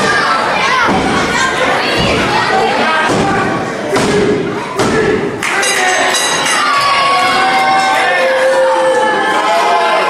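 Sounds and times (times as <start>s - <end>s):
children's voices: 0.0s - 5.1s
crowd cheering and shouting: 0.0s - 10.0s.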